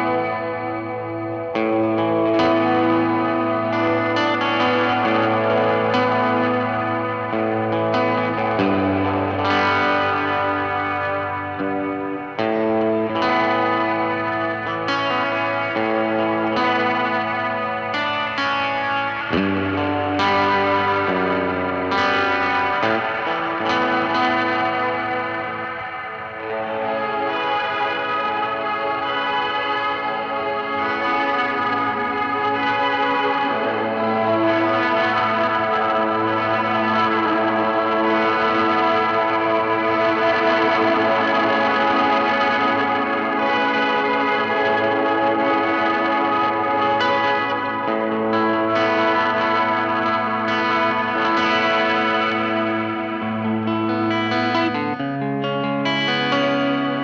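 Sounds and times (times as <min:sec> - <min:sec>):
electric guitar chords with reverb: 0:00.0 - 0:57.0.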